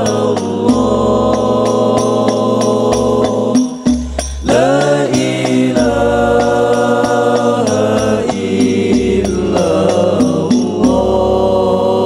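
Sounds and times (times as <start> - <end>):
frame drums beating: 0.0 - 11.9
male voices singing in unison: 0.0 - 12.0.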